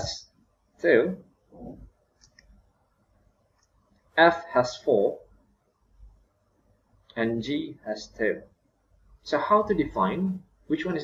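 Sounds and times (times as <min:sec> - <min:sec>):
person speaking: 0:00.0 - 0:01.9, 0:07.1 - 0:08.6, 0:09.2 - 0:11.0.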